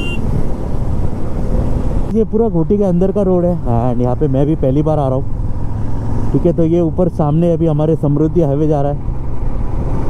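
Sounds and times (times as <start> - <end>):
vehicle horn: 0.0 - 0.2.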